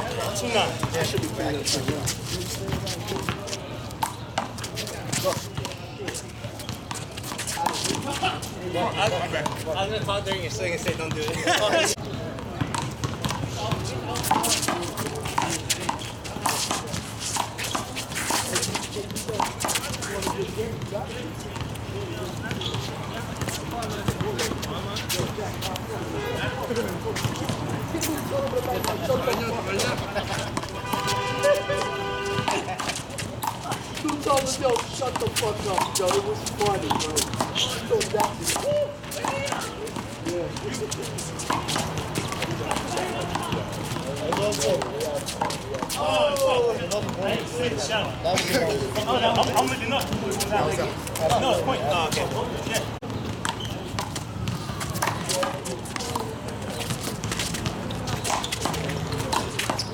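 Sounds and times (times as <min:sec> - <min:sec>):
sneakers scuffing on court: 0:00.0 - 0:10.2, 0:10.8 - 0:59.9.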